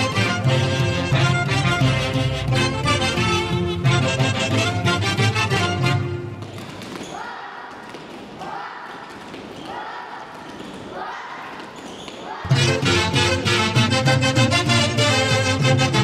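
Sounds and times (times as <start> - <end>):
folk dance music: 0.0 - 10.9, 11.5 - 16.0.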